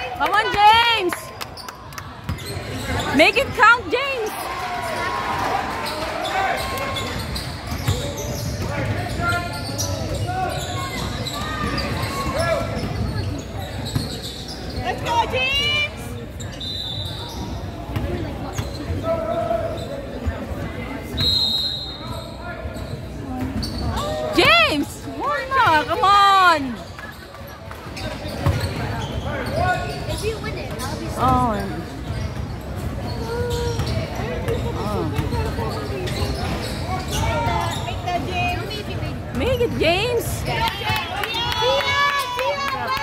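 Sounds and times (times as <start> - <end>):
people's voices: 22.8 - 43.0
basketballs bouncing on wood floor: 28.3 - 28.8, 32.4 - 35.5.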